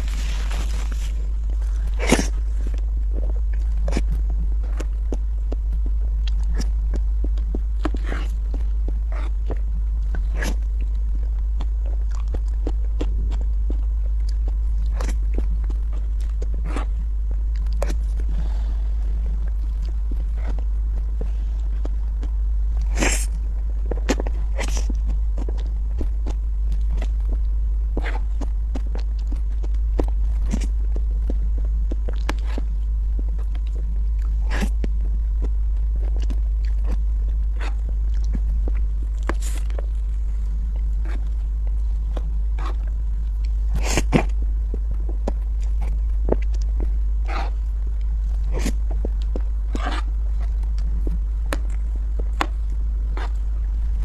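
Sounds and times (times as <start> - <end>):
chewing: 0.0 - 54.0
low hum: 0.0 - 54.0.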